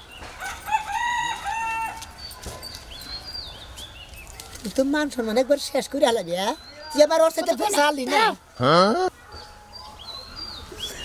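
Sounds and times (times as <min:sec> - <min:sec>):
rooster crowing: 0:00.4 - 0:02.0.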